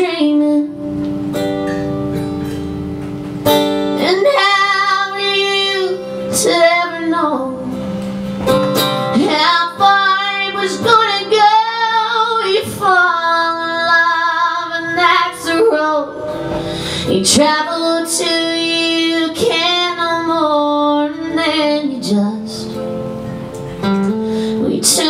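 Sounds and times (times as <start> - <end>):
woman singing: 0.0 - 0.9, 3.9 - 8.0, 9.0 - 22.8, 24.5 - 25.0
strummed acoustic guitar: 0.0 - 25.0.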